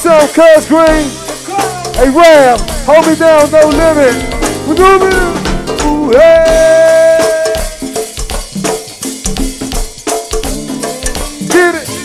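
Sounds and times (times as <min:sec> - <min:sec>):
drum and percussion groove: 0:00.0 - 0:12.0
short bass notes: 0:01.1 - 0:07.0.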